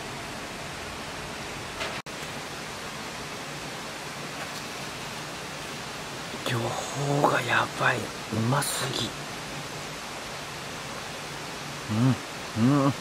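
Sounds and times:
outdoor background hiss: 0:00.0 - 0:13.0.

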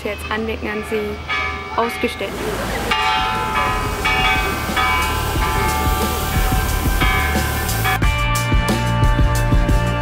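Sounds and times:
bell ringing: 0:00.2 - 0:08.2.

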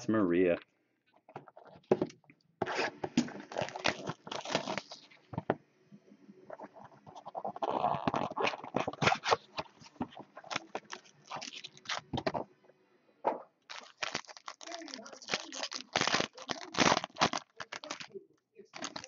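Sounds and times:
cardboard and wrapping tearing: 0:02.6 - 0:05.1, 0:07.2 - 0:12.2, 0:13.7 - 0:19.0.

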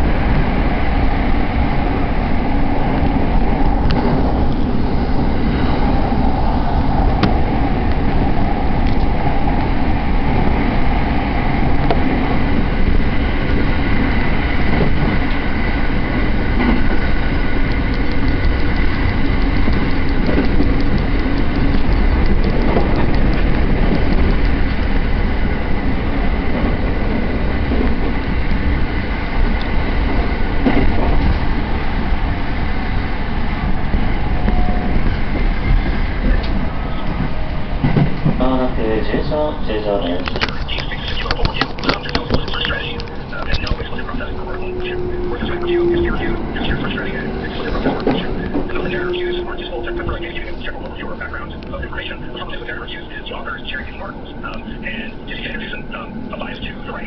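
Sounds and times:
train wheels rumbling on rail: 0:00.0 - 0:57.0
faint rail-joint ticks: 0:08.8 - 0:09.7, 0:16.6 - 0:25.0, 0:40.1 - 0:53.9.

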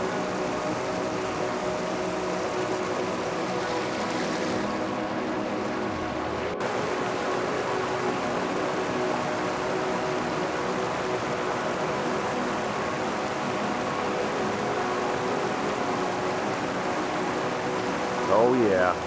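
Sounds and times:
river water rushing: 0:00.0 - 0:19.0.

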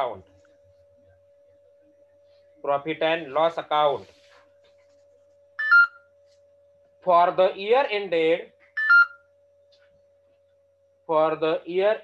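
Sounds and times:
two-note electronic beep: 0:05.6 - 0:06.0.

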